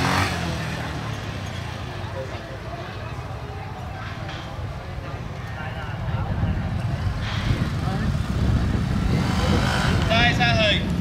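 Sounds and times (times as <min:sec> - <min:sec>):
motorcycle engine revving: 0:00.0 - 0:01.8, 0:06.8 - 0:11.0.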